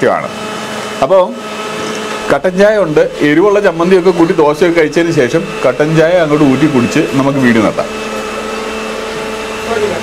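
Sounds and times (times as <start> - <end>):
machine humming: 0.0 - 10.0.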